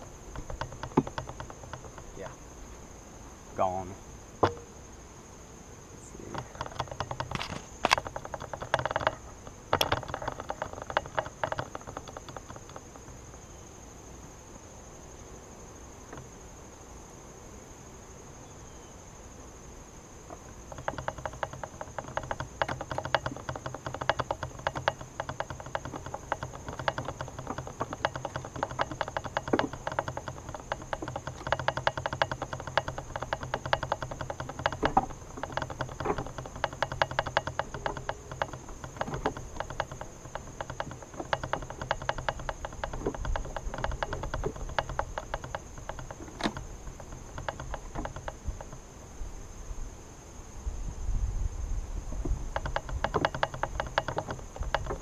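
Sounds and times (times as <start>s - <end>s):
rapid ticking and tapping: 0.0s - 2.4s, 6.1s - 13.4s, 20.3s - 48.9s, 52.2s - 55.0s.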